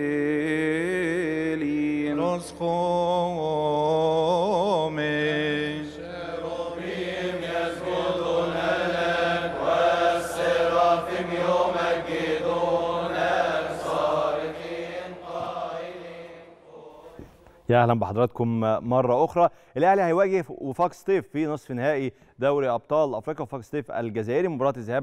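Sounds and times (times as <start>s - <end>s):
priest chanting: 0.0s - 19.2s.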